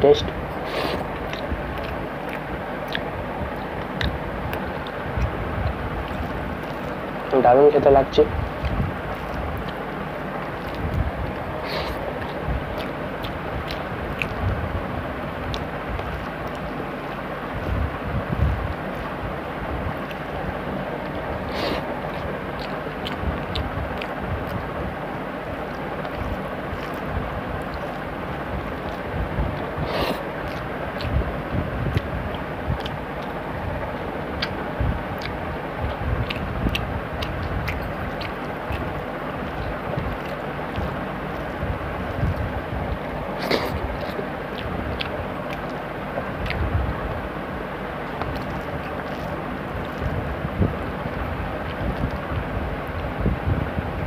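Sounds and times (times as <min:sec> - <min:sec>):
steady rushing background noise: 0:00.0 - 0:54.0
chewing: 0:00.2 - 0:07.4, 0:08.5 - 0:14.6, 0:15.4 - 0:17.9, 0:20.0 - 0:24.7, 0:25.5 - 0:53.1.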